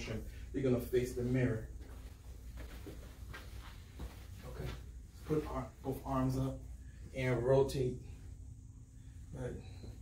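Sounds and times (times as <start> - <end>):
low room hum: 0.0 - 10.0
footsteps on hard floor: 1.8 - 4.9.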